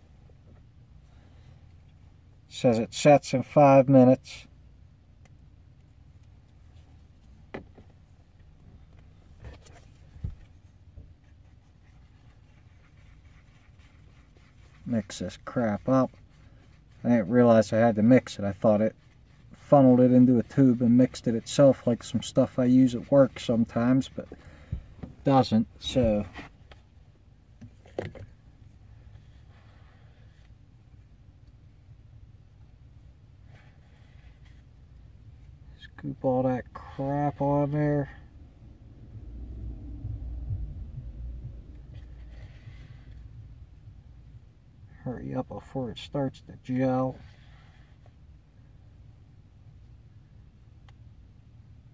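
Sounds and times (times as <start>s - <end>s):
low steady hum: 0.0s - 51.9s
low steady rumble: 0.0s - 51.9s
epoxy being stirred: 10.7s - 26.8s.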